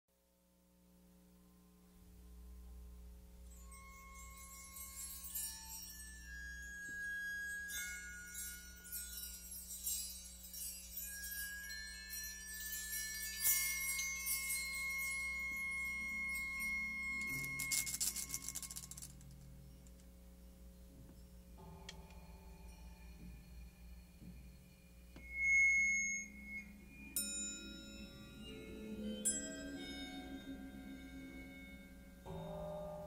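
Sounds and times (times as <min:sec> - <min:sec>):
meditative chime-like music: 0:03.3 - 0:33.0.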